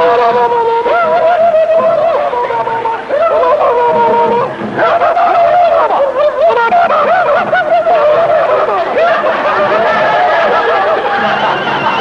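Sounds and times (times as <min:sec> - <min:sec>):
men whooping and yelling: 0:00.0 - 0:12.0.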